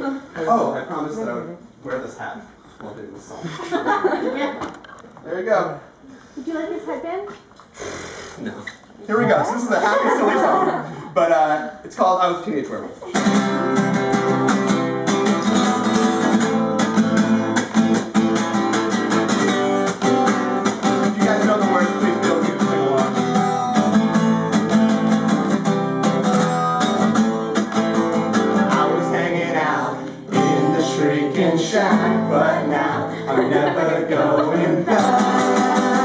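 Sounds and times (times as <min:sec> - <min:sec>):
acoustic guitar strumming: 0:13.1 - 0:36.0
man singing: 0:19.1 - 0:24.0, 0:28.6 - 0:36.0.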